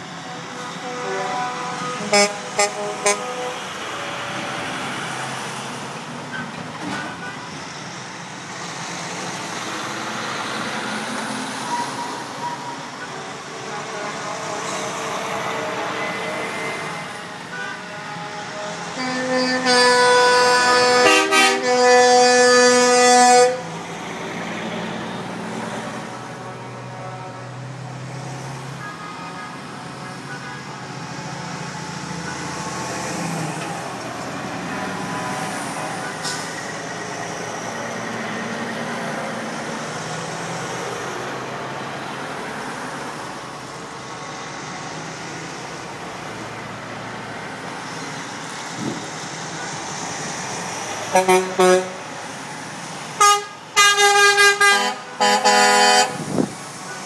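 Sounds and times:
diesel truck engines running: 0.0s - 57.0s
truck air horn blasting: 0.2s - 4.5s, 12.5s - 23.7s, 26.0s - 27.7s, 28.8s - 31.0s, 51.0s - 52.1s, 53.2s - 57.0s.

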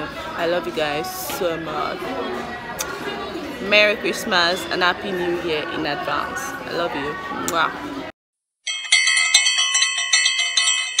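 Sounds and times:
rapid bell chimes: 8.6s - 11.0s.

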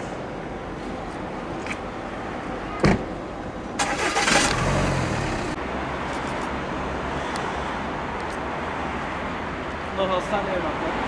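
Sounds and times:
car engine starting and idling: 3.7s - 5.6s.

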